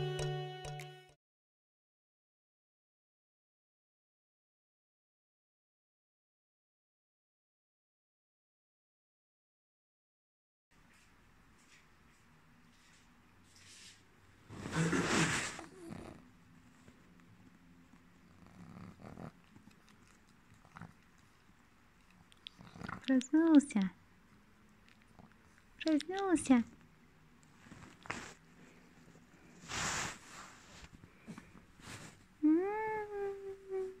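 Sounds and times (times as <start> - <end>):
dog licking and mouth sounds: 19.1 - 23.9, 24.7 - 28.1.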